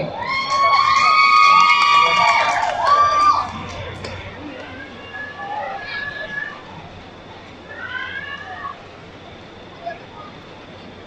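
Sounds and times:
audience cheering calls: 0.0s - 6.8s
steady low hum: 0.0s - 11.0s.

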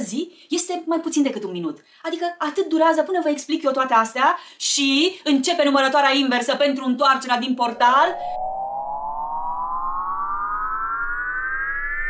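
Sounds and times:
buzzy electronic rising tone: 7.6s - 12.0s.

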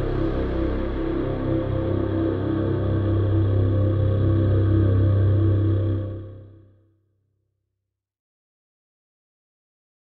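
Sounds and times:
deep steady drone: 0.0s - 6.5s
synth pad of held notes: 0.0s - 6.6s.

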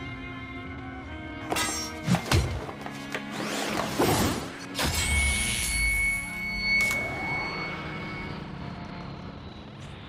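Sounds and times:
soundtrack music with sustained tones: 0.0s - 10.0s.

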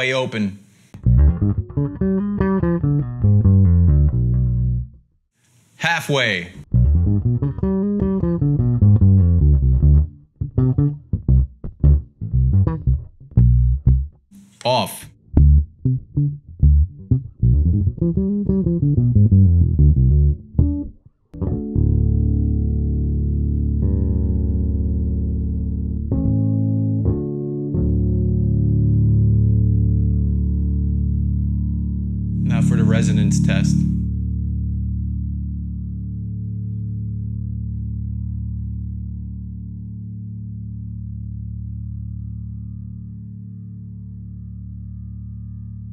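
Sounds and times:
electric bass line with slides: 1.0s - 5.0s, 6.7s - 14.6s, 15.3s - 45.9s
plucked bass note ringing: 21.4s - 40.0s.

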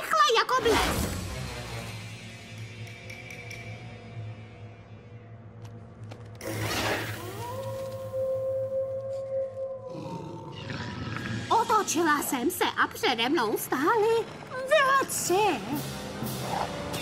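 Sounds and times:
loud rough growl: 9.9s - 11.5s.

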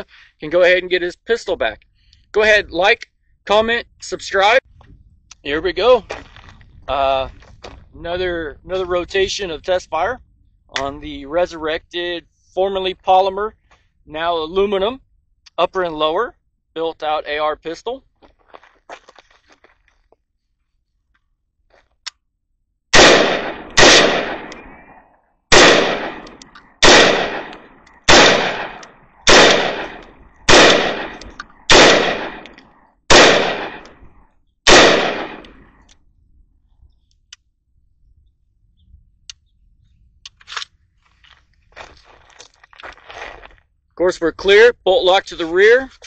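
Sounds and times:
pistol gunshots: 22.9s - 24.9s, 25.5s - 34.0s, 34.7s - 35.8s.

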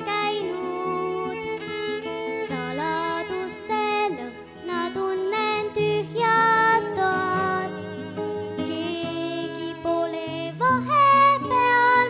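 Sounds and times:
girl singing into a microphone: 0.0s - 7.9s, 8.6s - 12.0s
instrumental accompaniment: 0.0s - 12.0s.

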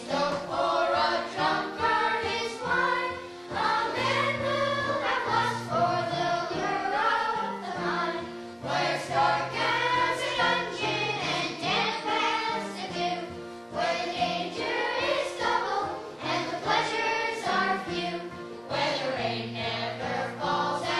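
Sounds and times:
children singing in unison: 0.0s - 20.9s.

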